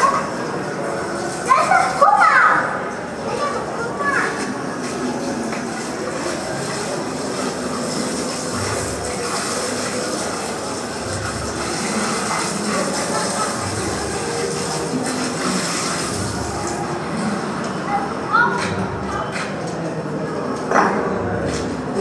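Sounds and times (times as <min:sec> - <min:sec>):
hose spraying water on metal: 0:03.4 - 0:17.3.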